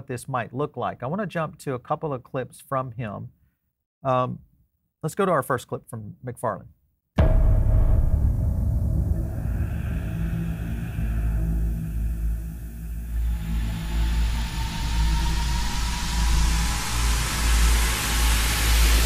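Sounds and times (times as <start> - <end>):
deep sustained rumble: 7.2 - 19.0
rising hiss: 7.2 - 19.0.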